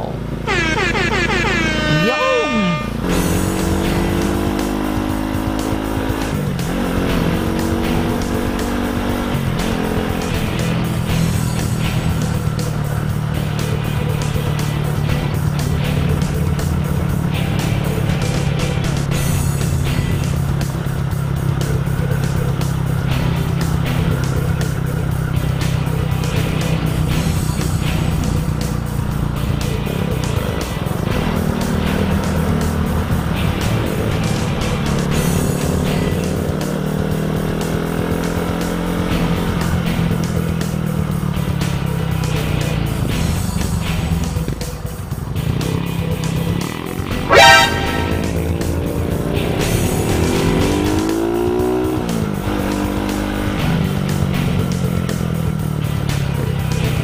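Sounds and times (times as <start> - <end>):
motorcycle engine: 0.0 - 57.0
music with regular beat: 47.1 - 48.8.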